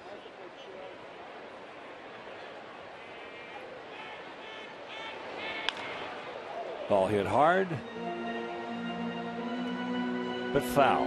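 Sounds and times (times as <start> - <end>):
crowd murmur: 0.0 - 11.0
bat cracking on ball: 5.6 - 6.0.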